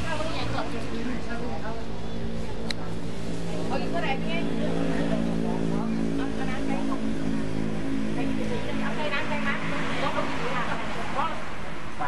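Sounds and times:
low drone: 0.0 - 12.0
woman speaking: 3.7 - 7.2, 8.2 - 12.0.

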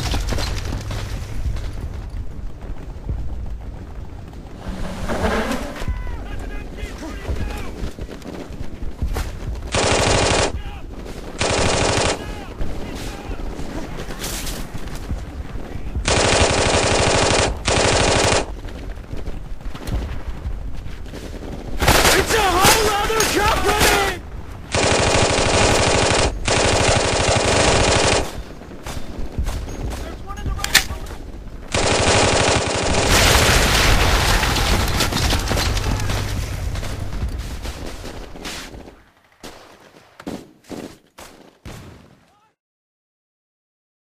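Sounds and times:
machine-gun fire bursts: 9.5 - 13.7, 14.8 - 20.4, 21.4 - 30.0, 30.8 - 39.7.

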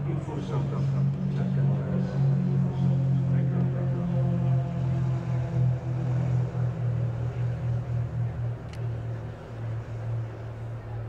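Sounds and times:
propeller plane engines droning: 0.0 - 11.0.

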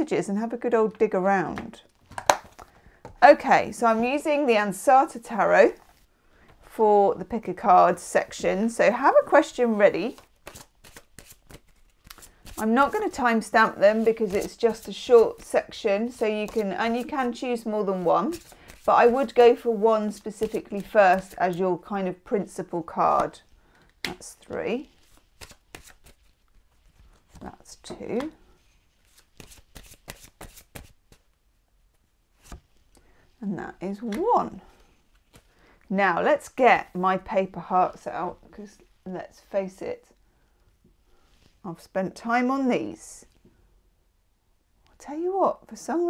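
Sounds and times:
cards being shuffled: 10.1 - 13.1, 13.7 - 15.6, 16.4 - 17.3, 17.9 - 19.5, 24.0 - 31.3, 35.1 - 35.6.

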